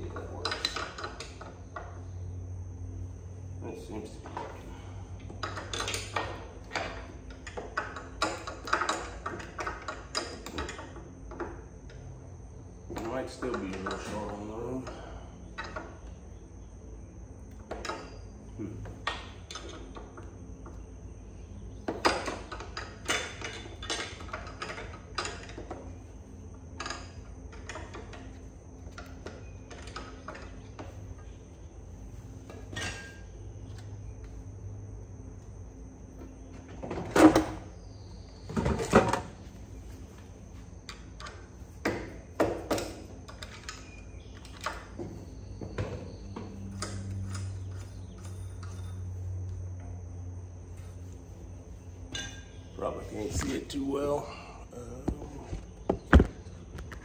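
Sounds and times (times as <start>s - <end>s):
wrench clinking on metal: 52.1s - 52.6s.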